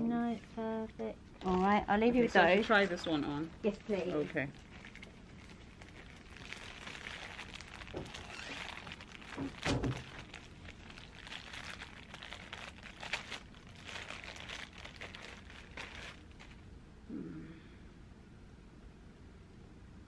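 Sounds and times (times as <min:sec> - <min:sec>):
plastic packaging crinkling: 0:01.3 - 0:16.7.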